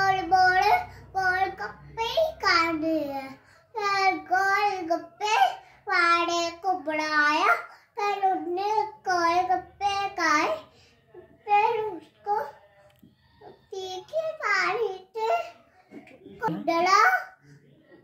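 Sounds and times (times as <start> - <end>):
child chanting a poem: 0.0 - 12.8, 13.4 - 15.8.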